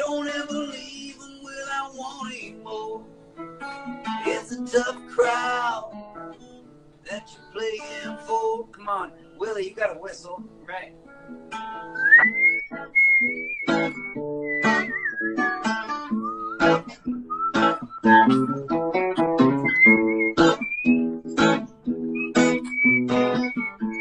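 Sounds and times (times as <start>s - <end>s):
strummed acoustic guitar: 0.0s - 24.0s
whistled melody: 11.8s - 24.0s.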